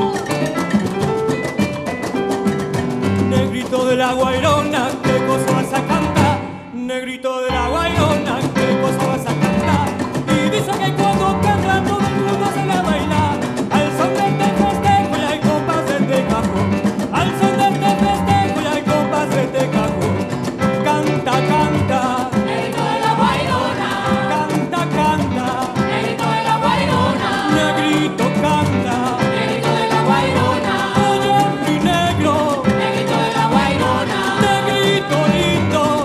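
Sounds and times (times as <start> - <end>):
cajon drums beating: 0.0 - 6.6, 7.7 - 36.0
guitar: 0.0 - 6.8, 7.5 - 36.0
person singing: 3.3 - 36.0.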